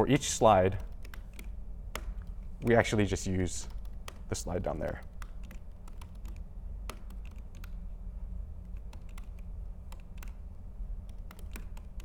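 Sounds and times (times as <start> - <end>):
steady low hum: 0.0 - 12.0
keyboard key clicks: 0.1 - 7.8, 8.7 - 10.4, 11.0 - 12.0.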